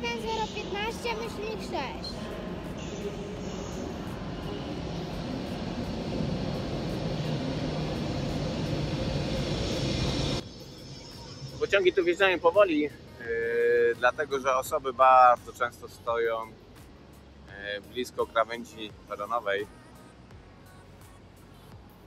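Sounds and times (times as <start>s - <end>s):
train rumbling: 0.0s - 12.1s.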